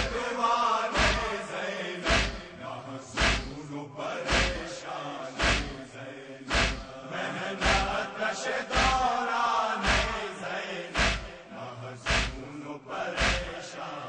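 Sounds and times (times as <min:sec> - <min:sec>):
men chanting a lament: 0:00.0 - 0:14.0
chest-beat thuds: 0:01.0 - 0:01.4, 0:02.0 - 0:02.6, 0:03.2 - 0:03.6, 0:04.3 - 0:04.7, 0:05.4 - 0:05.8, 0:06.5 - 0:06.9, 0:07.6 - 0:08.0, 0:08.7 - 0:09.1, 0:09.8 - 0:10.2, 0:11.0 - 0:12.5, 0:13.2 - 0:13.6.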